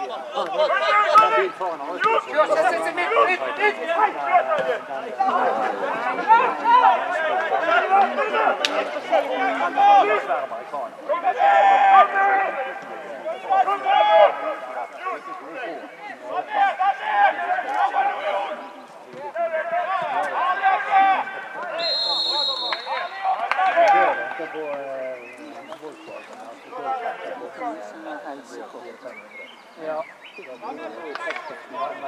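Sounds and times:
people talking over one another: 0:00.0 - 0:32.0.

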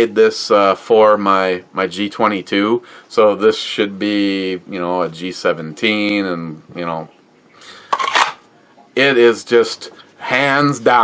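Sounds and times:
plastic holster rustle: 0:07.9 - 0:08.4
plastic holster scrape: 0:07.9 - 0:08.4.

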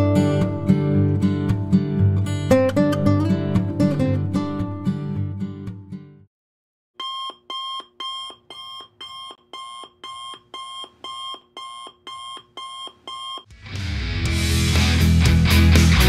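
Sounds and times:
loud rock music: 0:13.5 - 0:16.0.

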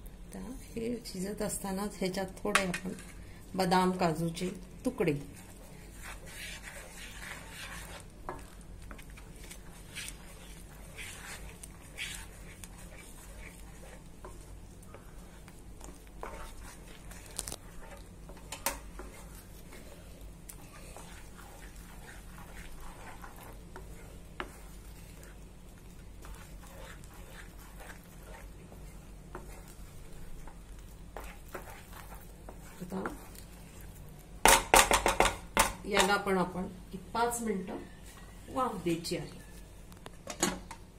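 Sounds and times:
steady low hum: 0:00.0 - 0:35.9
wooden spatula scraping a pan: 0:02.5 - 0:34.0.

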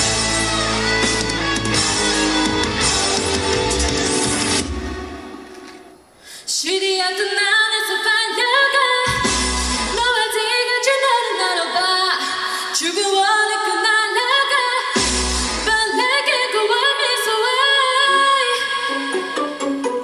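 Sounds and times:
backing track: 0:00.0 - 0:06.2, 0:09.0 - 0:10.3
woman singing pop song: 0:06.4 - 0:20.0.

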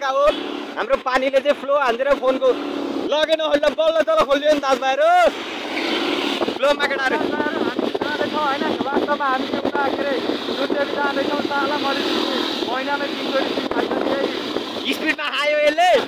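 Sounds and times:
motorcycle wind and road noise: 0:00.0 - 0:16.0
man shouting: 0:03.1 - 0:05.4, 0:14.9 - 0:16.0
person's voice: 0:06.6 - 0:16.0.

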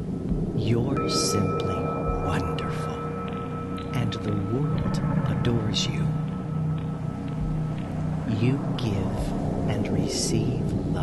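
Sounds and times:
ambient meditation music: 0:00.0 - 0:11.0.

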